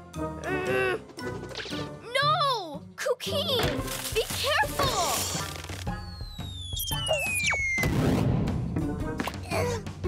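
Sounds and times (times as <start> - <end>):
background music: 0.0 - 10.0
cartoon descending whistle: 6.1 - 8.0.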